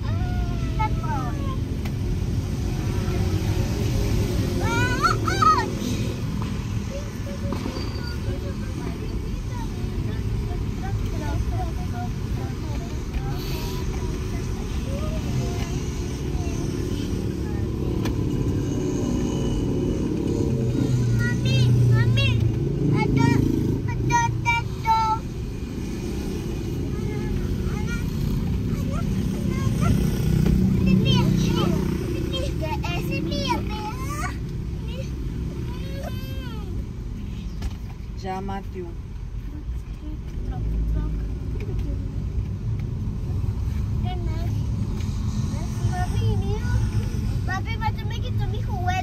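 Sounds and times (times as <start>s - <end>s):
car cabin road and engine rumble: 0.0s - 49.0s.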